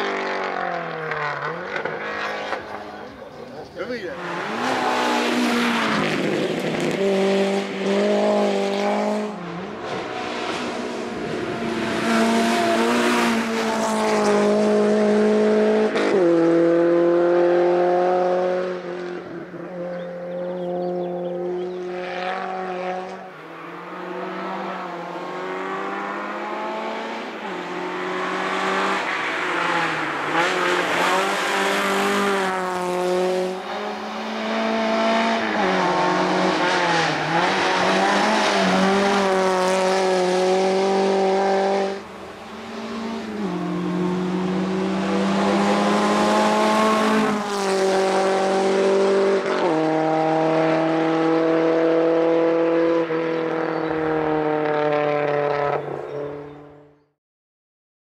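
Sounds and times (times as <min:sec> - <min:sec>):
car engine revving uphill: 0:00.0 - 0:57.0.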